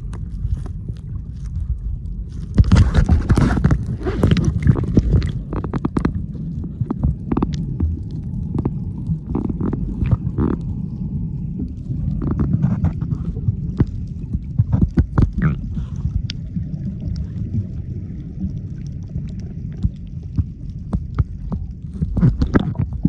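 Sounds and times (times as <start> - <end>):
muffled underwater rumble: 0.0 - 23.0
sharp clicks and pops: 2.4 - 10.8, 12.1 - 16.4, 19.3 - 23.0.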